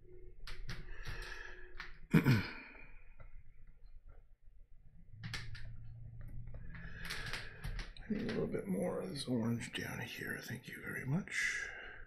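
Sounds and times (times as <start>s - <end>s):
man sighing: 2.1s - 2.9s.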